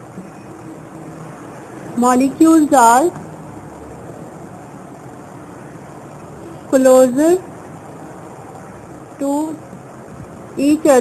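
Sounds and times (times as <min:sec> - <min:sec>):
low even hum: 0:00.0 - 0:11.0.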